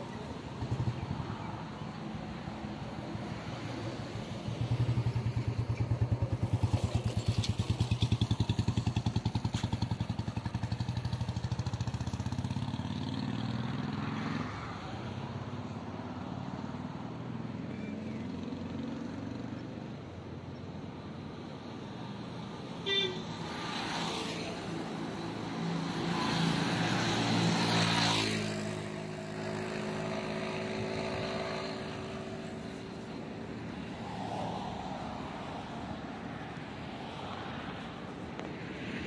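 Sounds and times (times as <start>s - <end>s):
highway traffic passing: 0.0s - 39.0s
short horn toot: 22.8s - 23.3s.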